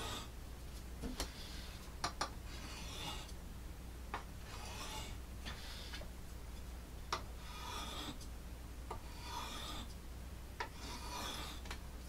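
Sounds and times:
knife scraping on sharpening stone: 0:02.5 - 0:03.3, 0:04.5 - 0:05.2, 0:07.4 - 0:08.2, 0:09.0 - 0:09.9, 0:10.6 - 0:11.7.

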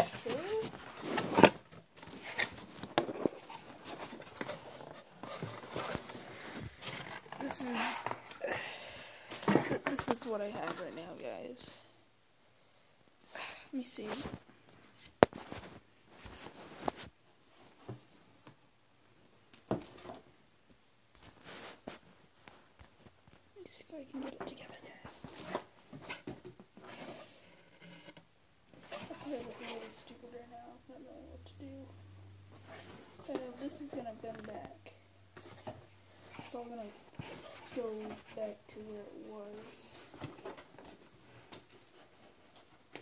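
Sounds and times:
cardboard rustling and scraping: 0:00.0 - 0:08.4, 0:21.2 - 0:23.1, 0:25.2 - 0:28.2, 0:28.8 - 0:30.4, 0:32.6 - 0:34.6, 0:35.4 - 0:43.0.

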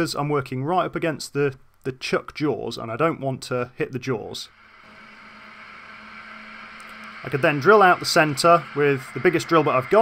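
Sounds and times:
metal lathe motor hum: 0:04.5 - 0:10.0
drill cutting steel: 0:04.6 - 0:10.0.

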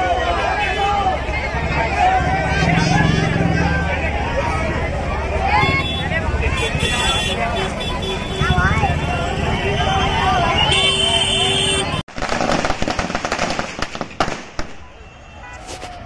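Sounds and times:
crowd shouting and chattering: 0:00.0 - 0:12.2, 0:13.9 - 0:16.0.

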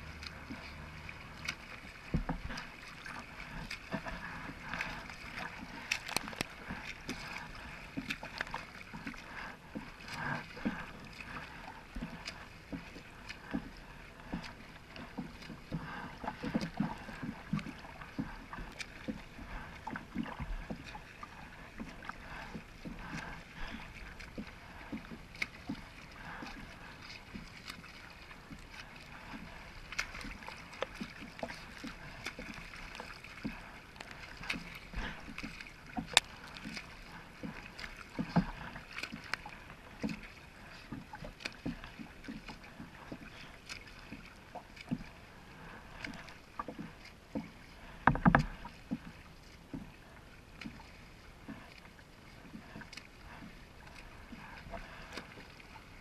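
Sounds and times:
water lapping around kayak: 0:00.0 - 0:56.0.

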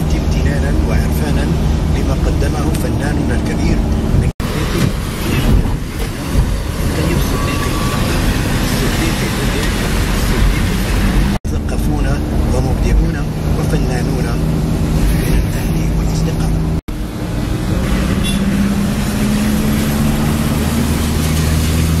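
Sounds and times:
car engine and road noise: 0:00.0 - 0:22.0
voices talking: 0:06.8 - 0:14.5.

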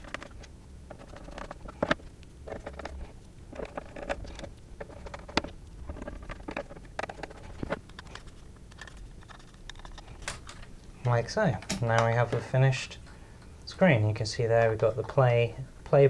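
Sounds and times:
screwdriver clicking and scraping: 0:00.0 - 0:10.7.

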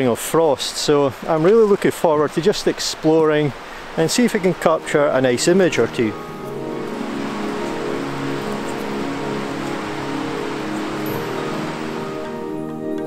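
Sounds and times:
steady hiss: 0:00.0 - 0:13.0
slow new-age music chords: 0:04.3 - 0:13.0.

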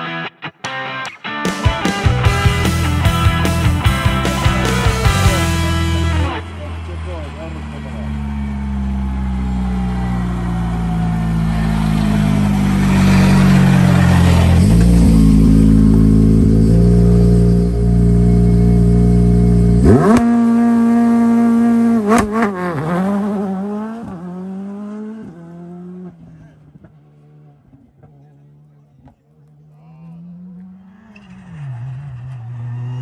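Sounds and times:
rally car engine revving: 0:01.9 - 0:33.0.

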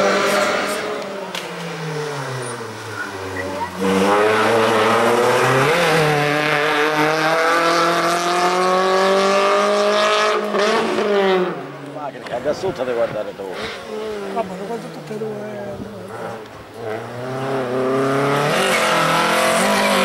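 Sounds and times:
race car engine revving: 0:00.0 - 0:12.0, 0:13.0 - 0:20.0.

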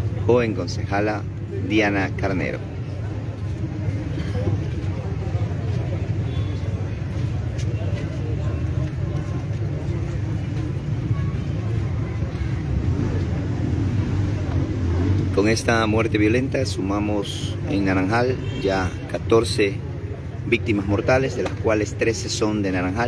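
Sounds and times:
low rumble of passing traffic: 0:00.0 - 0:23.0.

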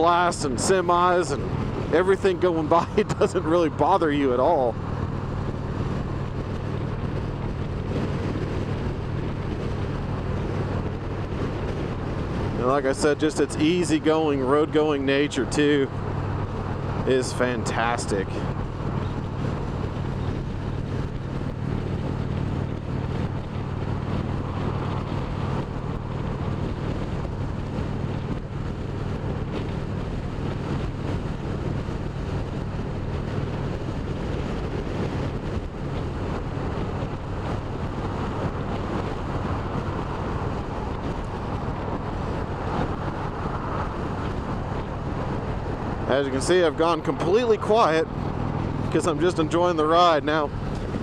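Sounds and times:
motorcycle engine cruising: 0:00.0 - 0:51.0
wind and road noise: 0:00.0 - 0:51.0.

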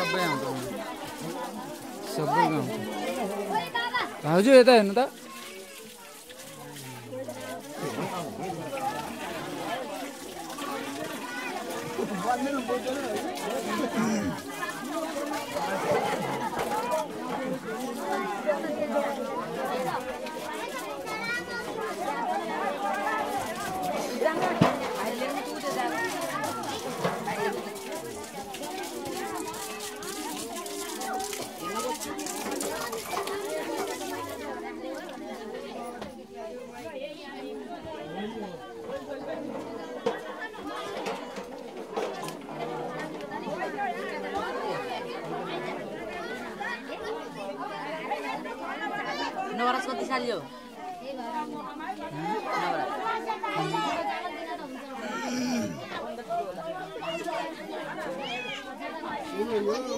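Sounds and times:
crowd chatter: 0:00.0 - 0:59.9.

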